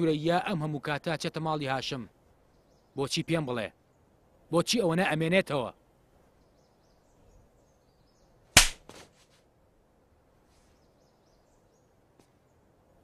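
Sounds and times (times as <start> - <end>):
sharp bang: 8.6 - 9.1.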